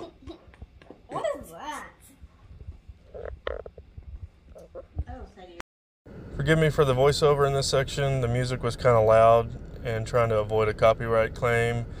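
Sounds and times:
beatboxing rumbling and thumping: 2.6s - 5.2s
voiced mouth pops: 4.5s - 5.1s.

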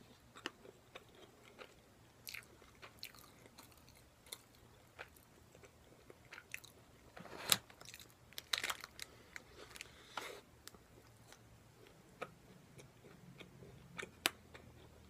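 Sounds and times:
crunchy chewing: 0.3s - 6.8s.

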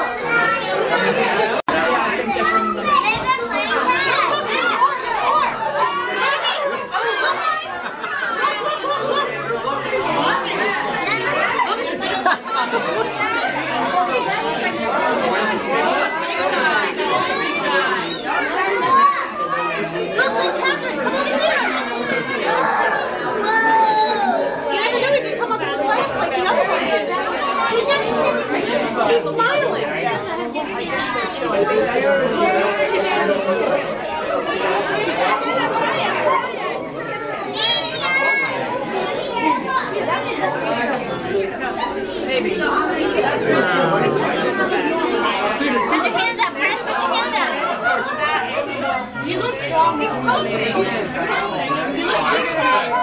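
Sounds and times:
crowd chatter: 0.0s - 53.0s.

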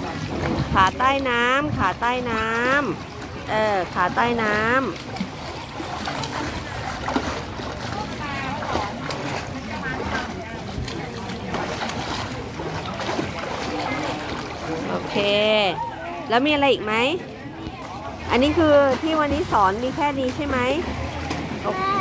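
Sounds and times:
faint voices: 0.0s - 22.0s
water splashing from kicking legs: 0.0s - 22.0s.

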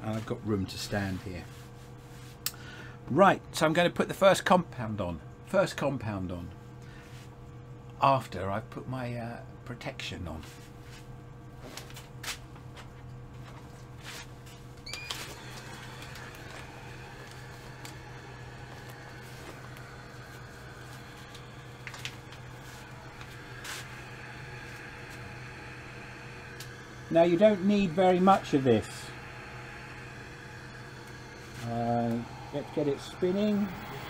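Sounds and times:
steady low hum: 0.0s - 34.0s
fan whirring: 9.8s - 34.0s.

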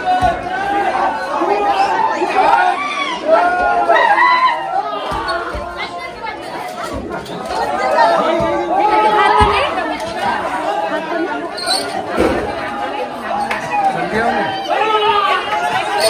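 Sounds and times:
men chattering and shouting: 0.0s - 16.0s.

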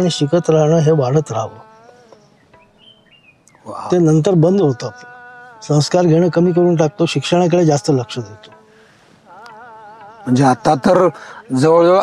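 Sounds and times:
man's voice: 0.0s - 2.0s, 3.6s - 12.0s.

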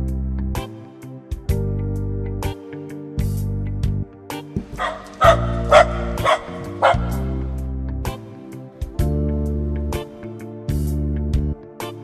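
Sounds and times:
electronic music track: 4.1s - 12.0s
sampled dog barks: 4.8s - 7.5s.

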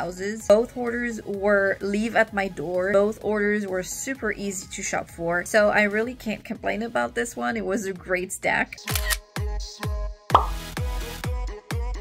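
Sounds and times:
short pop sound effect: 10.3s - 10.7s.

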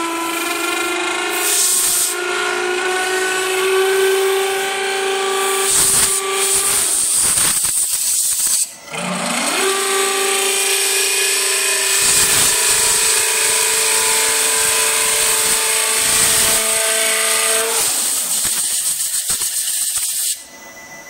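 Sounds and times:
drilling machine high whine: 0.0s - 21.0s
compressed air hiss: 1.3s - 2.2s, 3.9s - 8.8s, 17.6s - 20.4s.

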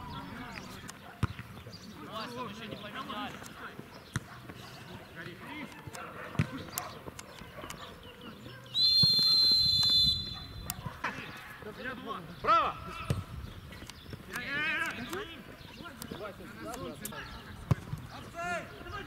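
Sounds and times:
ball being kicked: 1.2s - 1.5s, 13.0s - 13.3s, 17.6s - 18.1s
referee's whistle blast: 8.8s - 10.5s.

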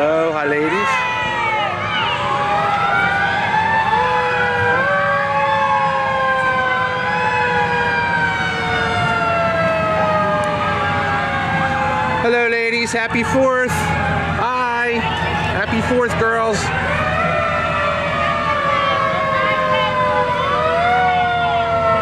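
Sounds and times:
sirens wailing: 0.0s - 22.0s.

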